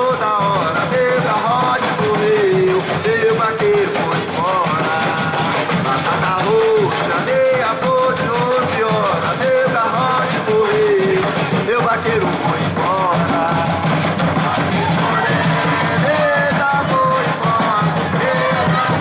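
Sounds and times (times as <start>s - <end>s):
dense percussion: 0.0s - 19.0s.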